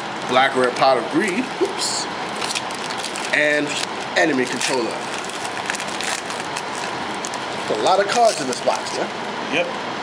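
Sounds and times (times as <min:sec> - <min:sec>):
foil pack crinkling: 0:00.2 - 0:09.1.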